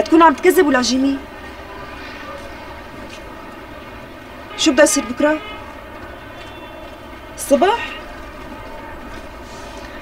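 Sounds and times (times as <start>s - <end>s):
woman speaking: 0.0s - 1.2s, 4.6s - 5.4s, 7.4s - 8.0s.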